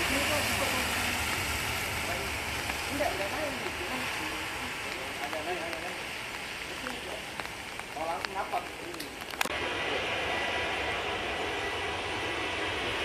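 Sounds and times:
hiss of spray: 0.0s - 7.7s
distant departing airliner: 9.4s - 13.0s
jet engine at takeoff power: 9.4s - 13.0s.

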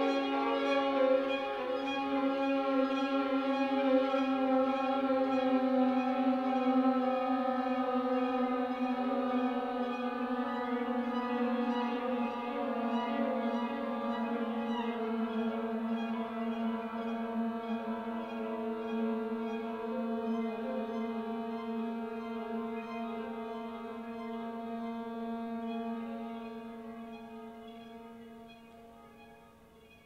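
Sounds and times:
violin slow held notes: 0.0s - 30.0s.

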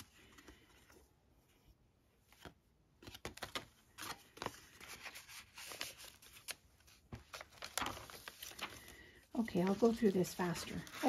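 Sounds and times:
pages turning: 2.2s - 11.0s
paper rustling: 2.2s - 11.0s.

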